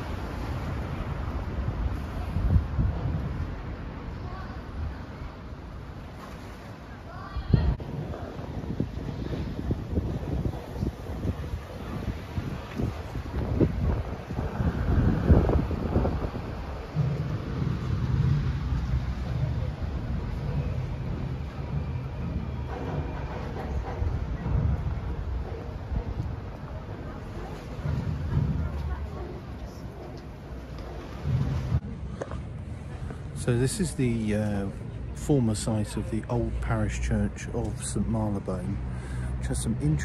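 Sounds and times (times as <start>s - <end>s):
wind buffeting microphone: 0.0s - 6.2s, 7.0s - 33.9s
city traffic rumble: 0.0s - 40.0s
steady low hum: 13.4s - 35.2s.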